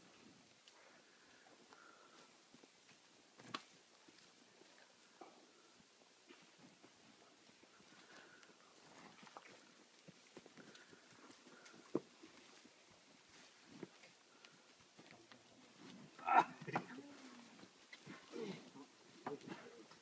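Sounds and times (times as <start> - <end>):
cattle hooves shifting on dirt: 0.0 - 20.0.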